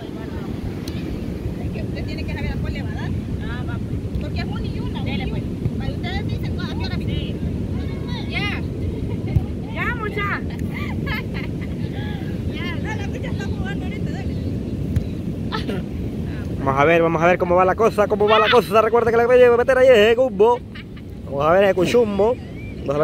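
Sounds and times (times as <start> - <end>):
wind rumble on microphone: 0.0 - 23.0
women chattering and calling: 1.5 - 14.5.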